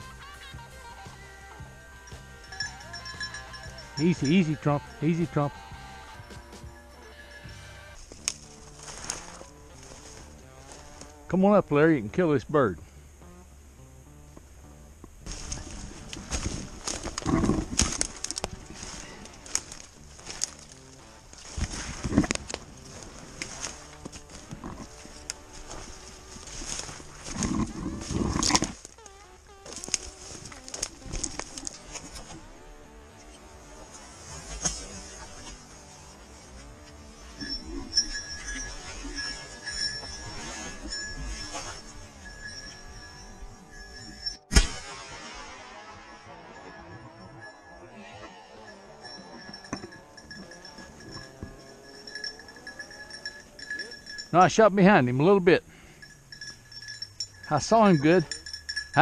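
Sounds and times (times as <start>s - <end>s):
small bell jingling: 1.7s - 5.6s, 6.2s - 9.0s, 37.1s - 44.5s, 46.5s - 59.0s
footsteps crunching in snow and leaves: 8.0s - 11.2s, 15.3s - 32.5s
brush rustling underfoot: 8.0s - 11.3s, 15.2s - 44.2s
twigs snapping: 8.1s - 9.2s, 15.3s - 22.7s, 28.4s - 32.1s.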